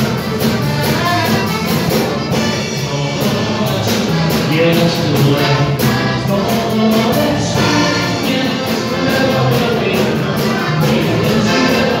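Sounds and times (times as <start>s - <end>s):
accordion playing chords: 0.0s - 12.0s
bass guitar: 0.0s - 12.0s
steady drum beat: 0.0s - 12.0s.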